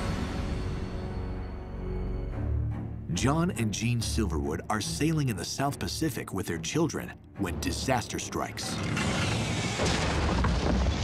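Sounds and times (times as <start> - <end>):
rumbling crash with deep boom: 8.9 - 11.0.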